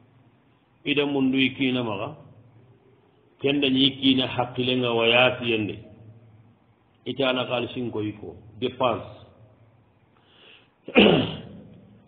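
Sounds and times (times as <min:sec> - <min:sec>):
faint breath: 0:10.1 - 0:10.8.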